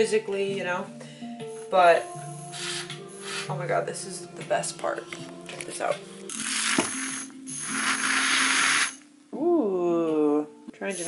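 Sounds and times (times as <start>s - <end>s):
milk frother whirring: 6.3s - 9.0s.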